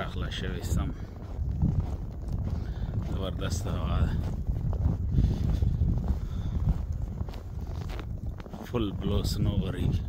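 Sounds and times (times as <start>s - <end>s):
footsteps crunching in snow: 0.0s - 10.0s
wind buffeting microphone: 0.0s - 10.0s.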